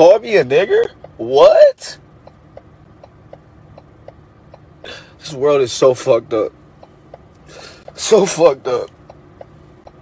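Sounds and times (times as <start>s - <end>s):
man talking: 0.0s - 2.0s, 5.2s - 6.6s, 7.9s - 9.0s
sharp intake of breath: 4.8s - 5.2s, 7.4s - 7.9s.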